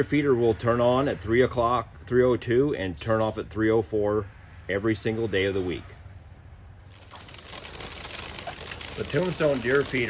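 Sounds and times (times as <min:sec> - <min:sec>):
feeder auger pushing out corn: 0:06.9 - 0:10.0.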